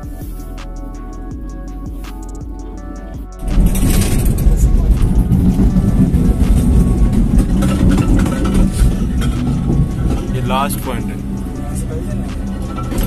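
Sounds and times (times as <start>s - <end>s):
cable car cabin rumble: 2.6s - 13.0s.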